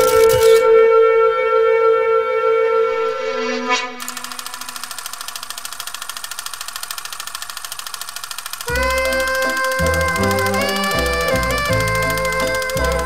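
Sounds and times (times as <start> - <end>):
film projector clattering: 4.2 - 13.0
music with sustained notes: 8.7 - 13.0.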